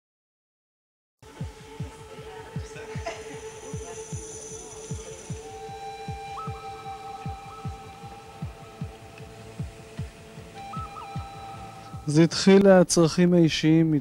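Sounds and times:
soft low pulse: 1.2 - 12.4
long held music notes: 1.2 - 13.5.

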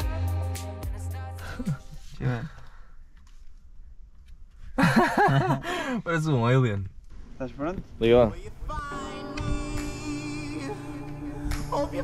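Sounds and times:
man laughing: 1.4 - 2.6, 4.8 - 6.0.

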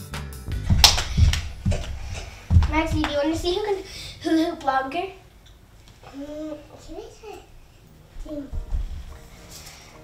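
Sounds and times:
background music: 0.0 - 2.1, 7.9 - 10.0
sharp slap: 0.5 - 3.2
bare feet thumping on wooden floor: 0.5 - 3.6, 8.5 - 9.2.

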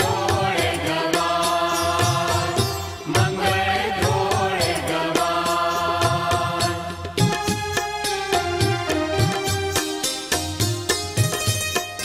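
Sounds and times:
devotional song melody: 0.0 - 12.0
steady percussion beat: 0.0 - 12.0.

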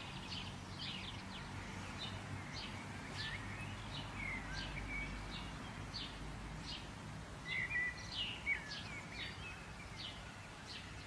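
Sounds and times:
outdoor background hiss: 0.0 - 11.0
songbirds chirping: 0.0 - 11.0.

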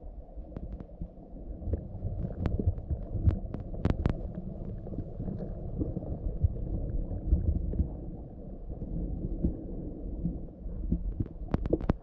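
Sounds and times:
muffled underwater rumble and thumping: 0.0 - 12.0.

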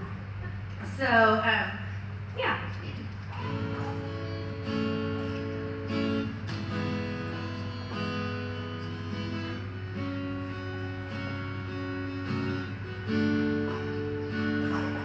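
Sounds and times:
acoustic guitar chords: 3.4 - 15.0.

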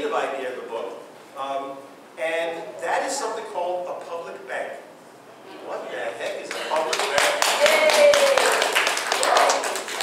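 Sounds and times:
audience clapping: 6.2 - 10.0.

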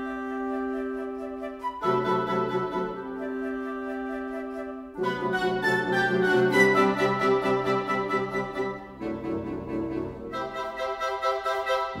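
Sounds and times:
woodwinds playing staccato notes: 0.0 - 12.0.

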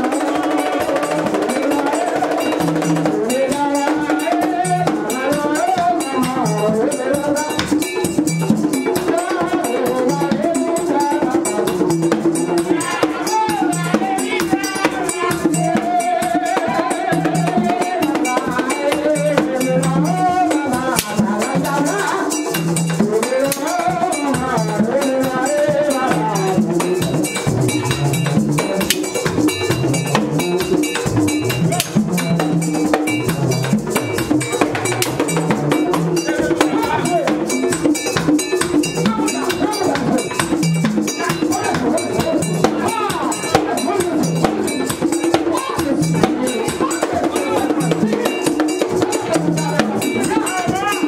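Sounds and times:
hand drums: 0.0 - 51.0
metal bell struck rhythmically: 0.0 - 51.0
voices singing: 0.0 - 51.0.

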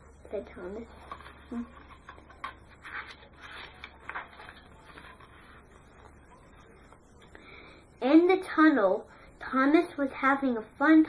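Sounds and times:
book pages rustling: 0.9 - 6.2.

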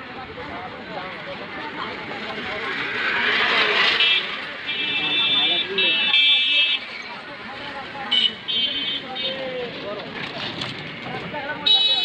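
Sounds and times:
murmur of voices: 0.0 - 12.0
street traffic: 0.0 - 12.0
vehicle passing close: 1.3 - 6.0
high-pitched vehicle horn: 3.9 - 6.9.

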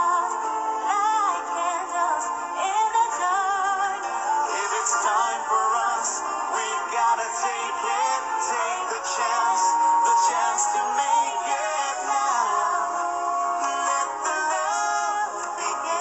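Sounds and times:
person singing with vibrato: 0.0 - 16.0.

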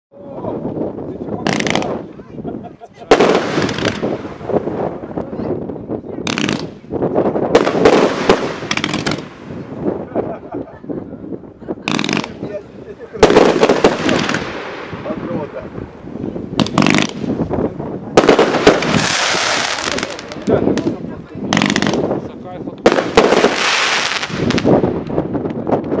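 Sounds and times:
fireworks bangs: 0.7 - 2.2, 3.0 - 10.3, 11.8 - 26.0.

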